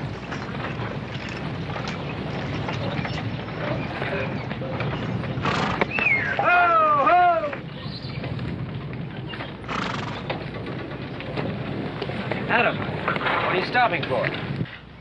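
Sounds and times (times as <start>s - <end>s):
hooves and wagons clattering: 0.0s - 15.0s
horse neighing: 5.4s - 7.6s, 9.6s - 10.5s.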